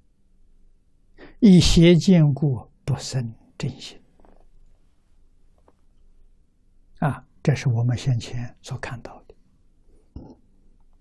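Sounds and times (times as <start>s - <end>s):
man speaking: 1.3s - 4.0s, 7.0s - 9.3s.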